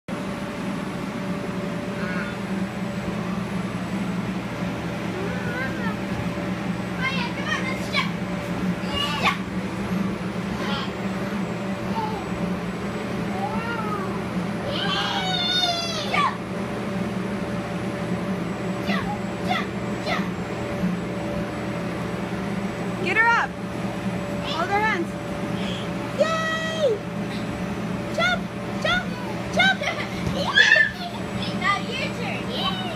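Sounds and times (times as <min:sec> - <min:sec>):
electric air blower droning: 0:00.1 - 0:32.9
children squealing and calling: 0:13.5 - 0:16.2, 0:30.4 - 0:31.3.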